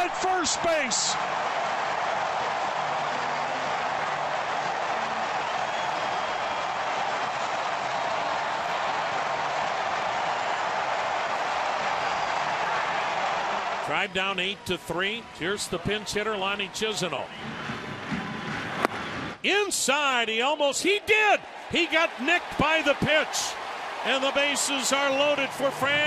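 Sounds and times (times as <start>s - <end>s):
crowd cheering: 0.0s - 26.0s.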